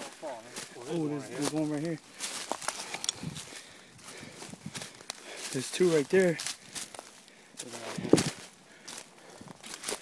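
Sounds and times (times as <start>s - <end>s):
footsteps through undergrowth: 0.0s - 10.0s
twig snapping: 2.3s - 3.2s.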